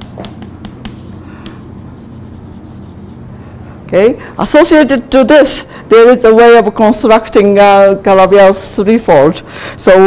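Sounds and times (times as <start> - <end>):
chalk scratching on blackboard: 0.0 - 3.3
low room hum: 0.0 - 10.0.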